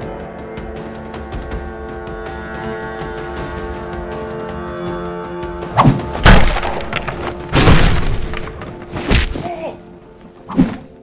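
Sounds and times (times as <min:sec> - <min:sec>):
film music with held notes: 0:00.0 - 0:11.0.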